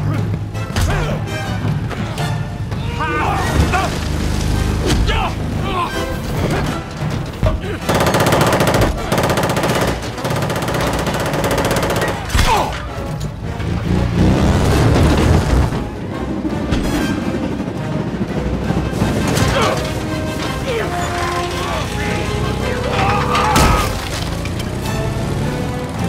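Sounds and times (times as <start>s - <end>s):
film score music: 0.0s - 26.0s
machine-gun fire: 7.9s - 12.3s.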